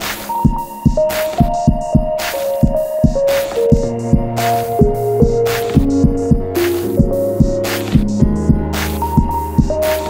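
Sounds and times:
kick drum thumps: 0.4s - 9.8s.

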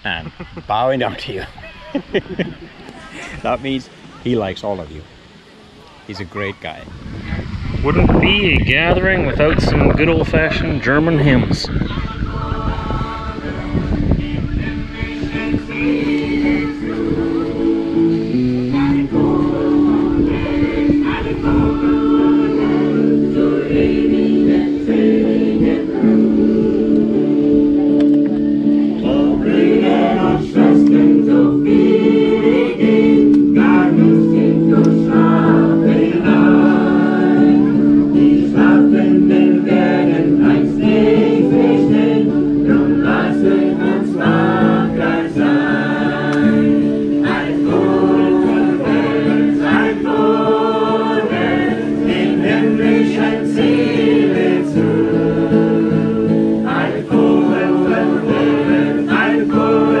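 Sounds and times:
group singing a hymn: 6.1s - 60.0s
acoustic guitar: 9.4s - 60.0s.

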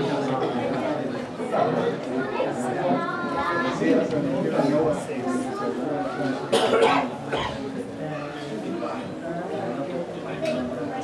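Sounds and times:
low background chatter: 0.0s - 11.0s
person coughing: 6.5s - 7.6s.

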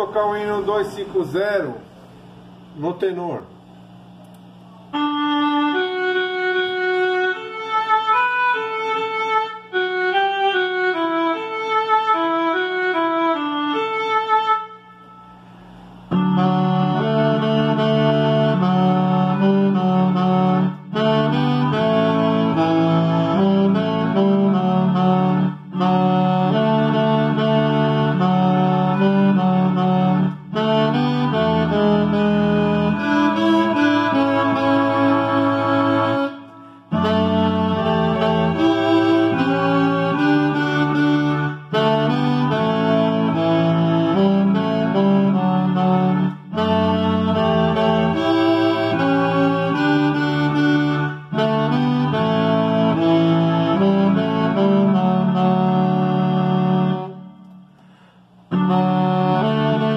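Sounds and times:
alto saxophone playing a hymn: 0.0s - 3.3s, 4.8s - 59.9s
recorded accompaniment: 4.2s - 59.9s.

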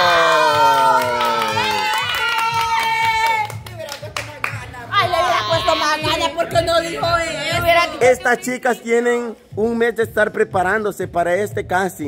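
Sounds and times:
group shouting excitedly: 0.0s - 3.3s
people clapping: 0.0s - 5.2s.

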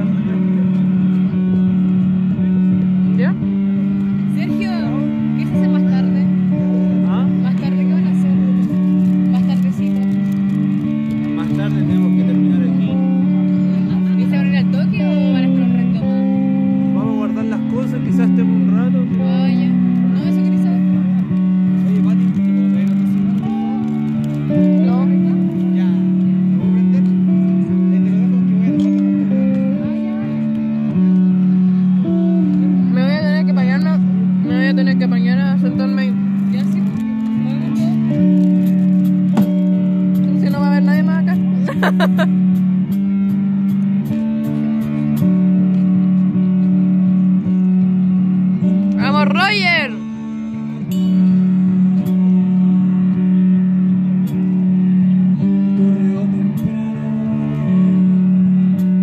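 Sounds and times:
live punk band playing: 0.0s - 59.0s.

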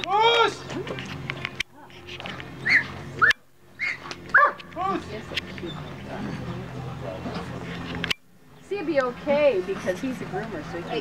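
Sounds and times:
dog whining and yipping: 2.6s - 4.6s.

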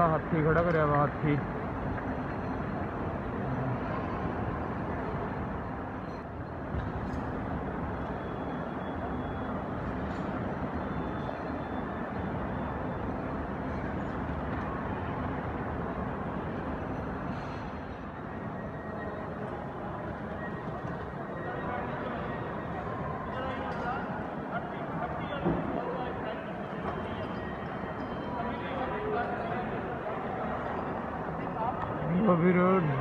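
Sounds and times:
busy airport terminal din: 0.0s - 33.0s
indistinct distant voices: 7.6s - 33.0s.

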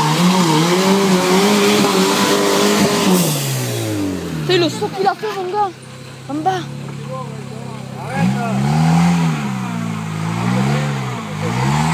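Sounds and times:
off-road vehicle engine revving: 0.0s - 11.9s.

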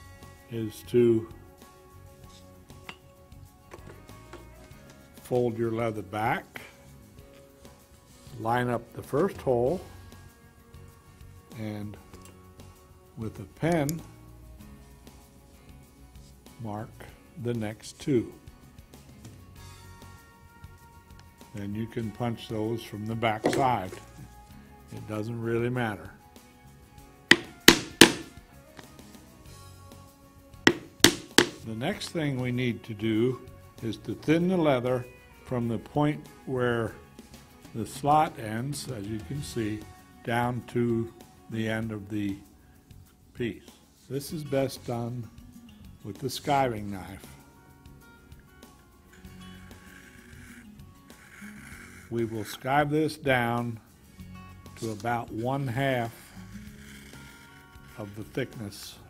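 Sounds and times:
soft background music: 0.0s - 59.0s
clicks on plastic cutting board: 27.3s - 28.3s
mallet striking punch into leather: 27.3s - 28.4s, 30.7s - 31.6s.

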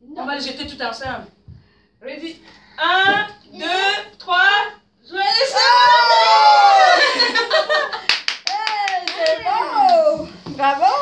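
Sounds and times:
children shrieking and cheering: 5.5s - 7.2s
hand claps: 8.0s - 10.1s.

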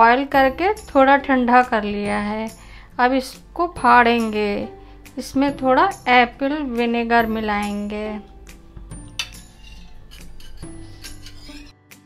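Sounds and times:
soft background music: 0.0s - 12.0s
ladle clinking on steel bowls: 9.0s - 11.7s.

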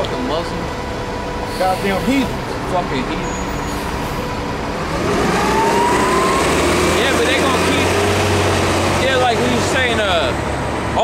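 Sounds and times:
vehicle engine accelerating: 1.5s - 11.0s.

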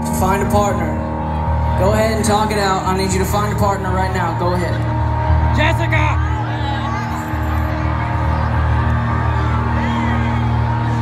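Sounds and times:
crowd noise: 0.0s - 11.0s
live concert keyboard chord: 0.0s - 11.0s.

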